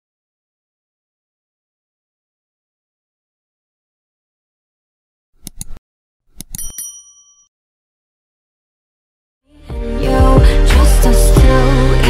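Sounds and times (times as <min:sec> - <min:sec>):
mouse clicks: 0:05.4 - 0:05.8
bright bell ding: 0:06.5 - 0:07.5.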